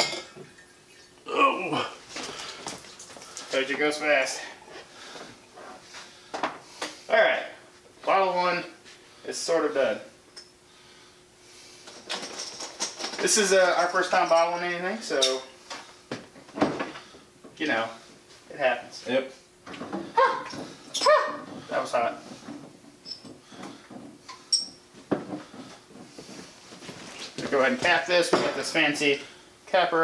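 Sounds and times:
glass bottles clinking: 0.0 - 1.1, 12.1 - 15.5, 23.0 - 23.4, 24.3 - 24.8, 28.2 - 28.7
faint hum: 0.1 - 30.0.

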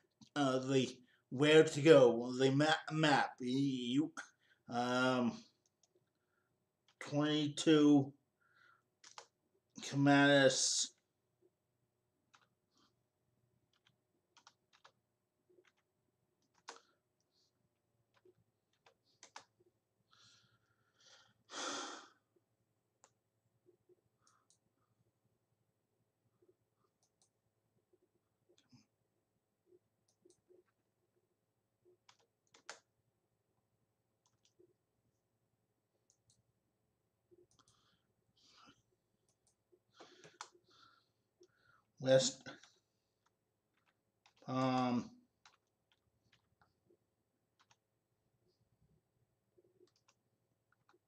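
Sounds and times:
faint keyboard typing: 5.6 - 6.2, 9.0 - 9.4, 12.2 - 13.0, 13.6 - 19.8, 26.4 - 28.9, 29.6 - 32.9, 34.2 - 35.2, 37.3 - 51.0
faint keyboard keystrokes: 9.0 - 9.3, 13.7 - 16.9, 18.1 - 19.5, 32.0 - 32.9, 47.6 - 47.8.

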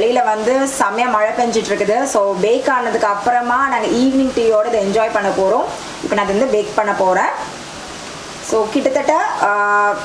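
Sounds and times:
woman speaking: 0.0 - 7.6, 8.4 - 10.0
steady background hiss: 0.0 - 10.0.

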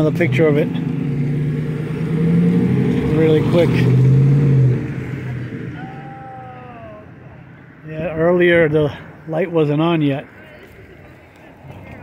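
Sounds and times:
passing car engine and tyres: 0.0 - 12.0.

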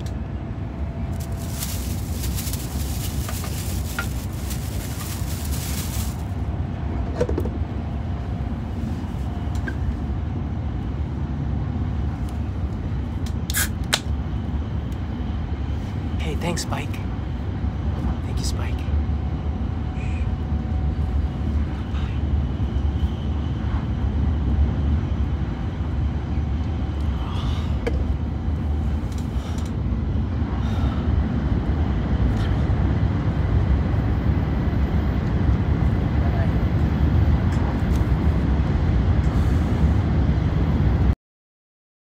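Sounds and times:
train rumbling at speed: 0.0 - 41.2.

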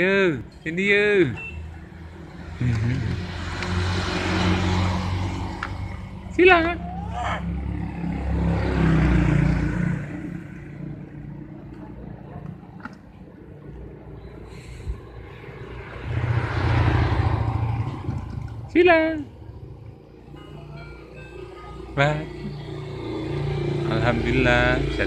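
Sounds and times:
motor vehicles passing by: 0.0 - 25.0.

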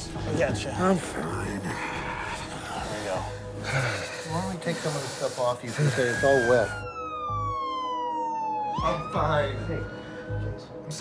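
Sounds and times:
emergency vehicle siren wailing: 5.6 - 11.0.

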